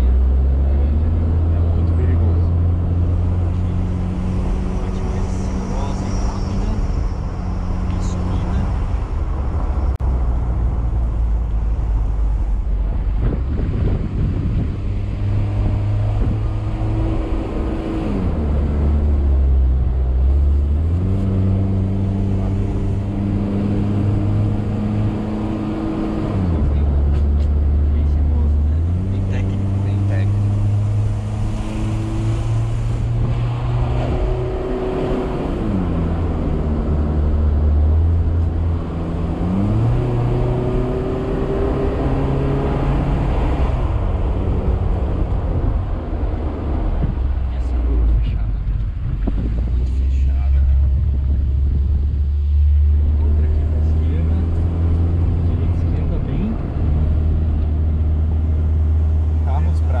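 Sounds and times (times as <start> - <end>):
road and tyre noise: 0.0 - 60.0.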